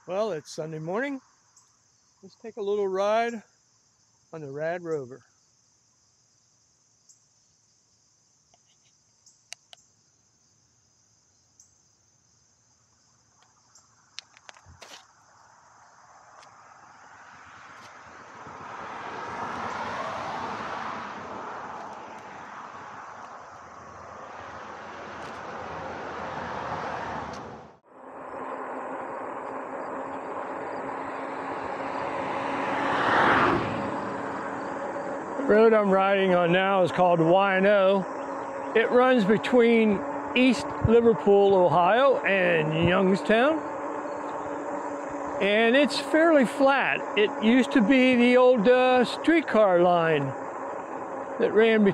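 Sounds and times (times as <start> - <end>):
insects chirring: 0.0 - 51.9
small clicks: 13.4 - 15.1.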